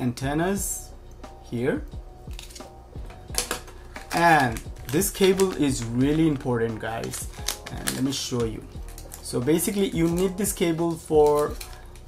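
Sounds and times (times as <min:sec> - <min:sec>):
plastic bag crinkle: 0:03.4 - 0:12.0.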